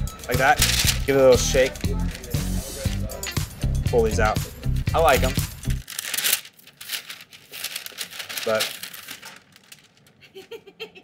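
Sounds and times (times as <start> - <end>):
paper bag crinkling: 0.3 - 3.2, 4.8 - 10.3.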